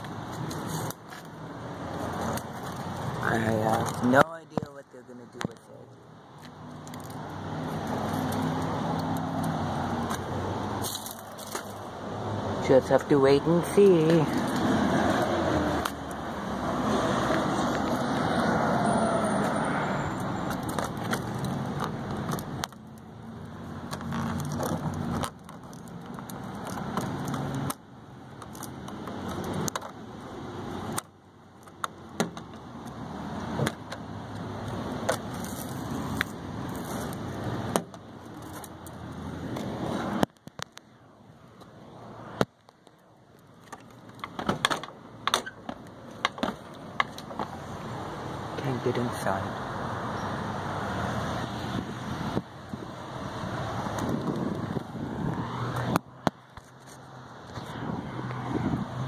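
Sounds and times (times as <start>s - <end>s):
handling clicks and rattles: 23.8s - 30.0s.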